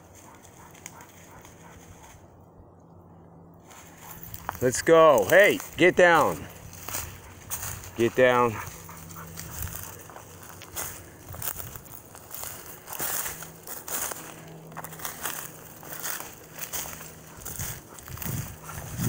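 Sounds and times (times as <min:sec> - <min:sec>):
footsteps crunching through dry leaves: 0:00.0 - 0:02.3, 0:03.6 - 0:19.0.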